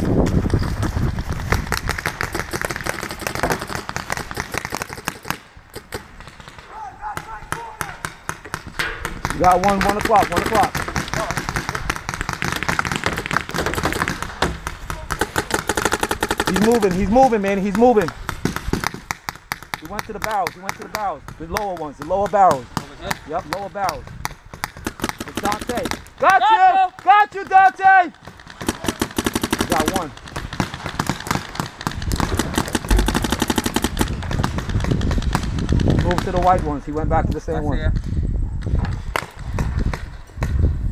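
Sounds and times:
paintball markers firing: 0.0s - 37.4s.

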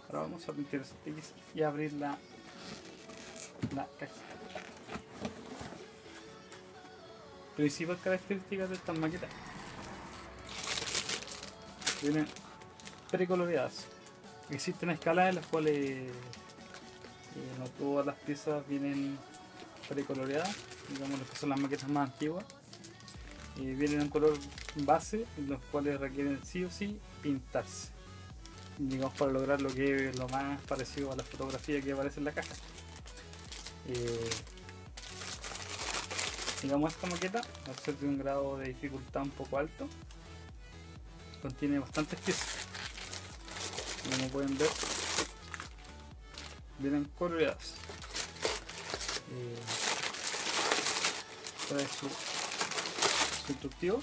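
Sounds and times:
quiet background music: 0.0s - 54.0s
plastic bags crinkling: 2.0s - 5.7s, 8.6s - 17.7s, 18.7s - 25.0s, 28.8s - 38.1s, 41.6s - 46.6s, 47.5s - 54.0s
cardboard lid scraping: 4.7s - 5.9s.

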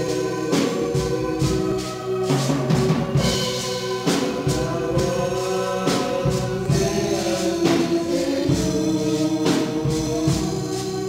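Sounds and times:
amplified band instruments: 0.0s - 11.0s
steady percussion beat: 0.0s - 11.0s
man singing through microphone: 4.0s - 11.0s.

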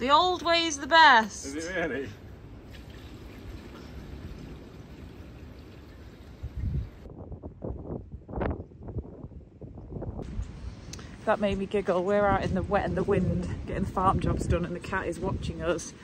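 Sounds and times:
fuel gushing into a tank: 2.3s - 7.1s.

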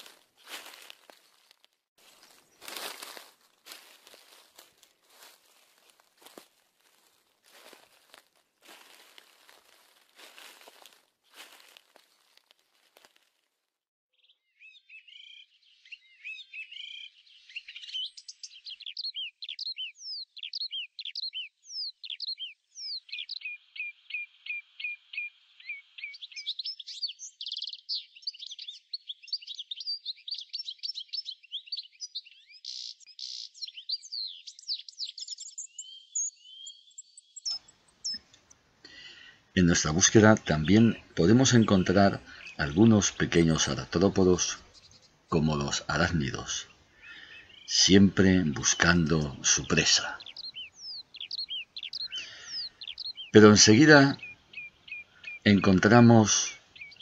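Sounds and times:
songbirds chirping: 0.0s - 13.3s, 14.1s - 57.0s
footsteps in dry leaves: 0.0s - 13.5s.

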